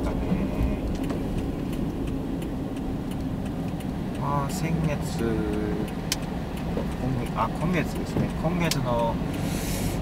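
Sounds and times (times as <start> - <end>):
car engine and tyre rumble: 0.0 - 10.0
faint ticks: 0.8 - 10.0.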